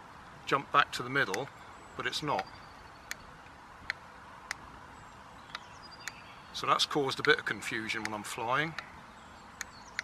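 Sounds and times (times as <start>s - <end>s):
control sticks clicking: 7.2s - 7.4s, 8.0s - 8.9s.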